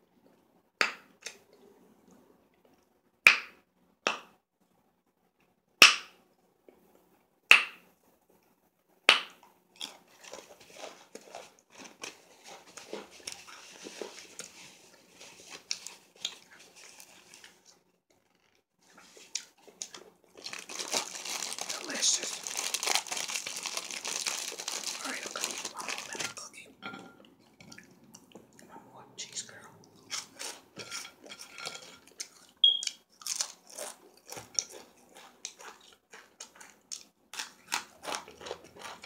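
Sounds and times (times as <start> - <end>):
crinkling: 9.8 - 28.7
lip smacking and chewing: 31.8 - 39.0.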